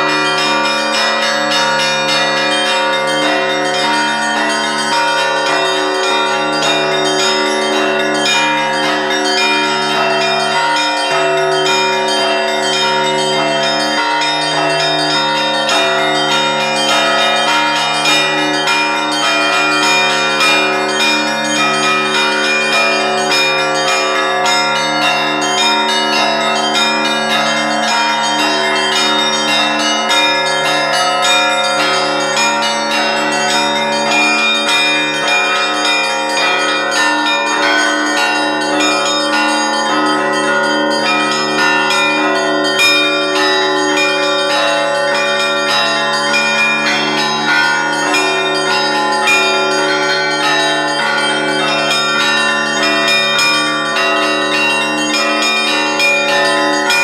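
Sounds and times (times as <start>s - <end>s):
lower bells ringing: 0.0s - 57.0s.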